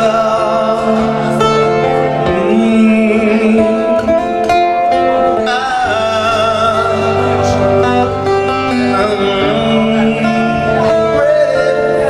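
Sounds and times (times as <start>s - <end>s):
guitar chords: 0.0s - 12.0s
man singing: 0.0s - 12.0s.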